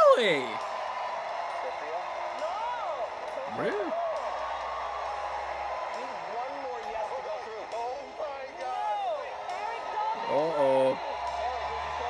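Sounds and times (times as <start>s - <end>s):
audience cheering and applauding: 0.0s - 12.0s.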